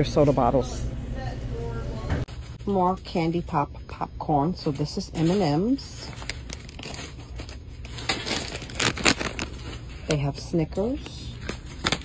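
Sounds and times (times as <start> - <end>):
plastic snack bags crinkling: 5.1 - 12.0.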